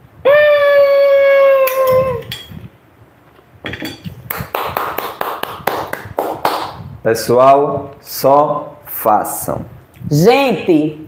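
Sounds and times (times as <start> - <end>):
rapid hand clapping: 4.3 - 6.8.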